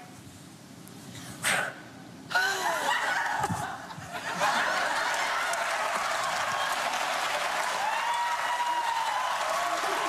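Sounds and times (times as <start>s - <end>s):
studio audience laughing: 3.0s - 6.3s.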